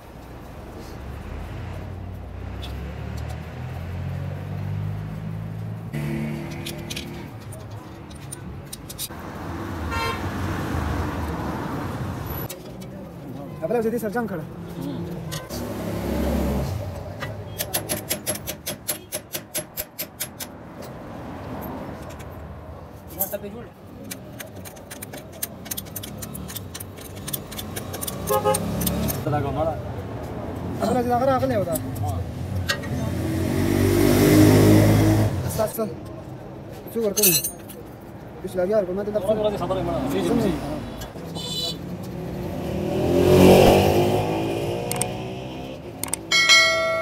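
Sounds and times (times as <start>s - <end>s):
vehicle passing by: 0.7s - 7.4s, 9.2s - 12.5s, 15.5s - 17.1s, 21.0s - 22.6s, 32.3s - 35.7s, 41.9s - 46.1s
horn toot: 28.3s - 28.7s.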